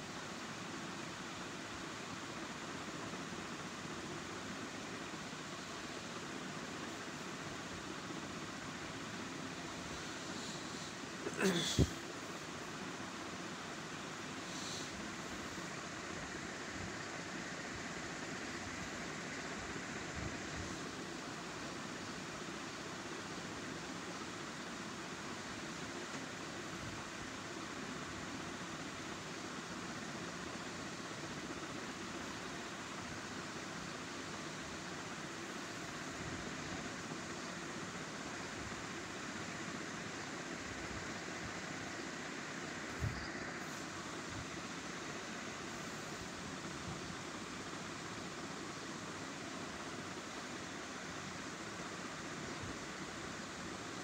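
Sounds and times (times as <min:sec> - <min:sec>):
steady background hiss: 0:00.0 - 0:54.0.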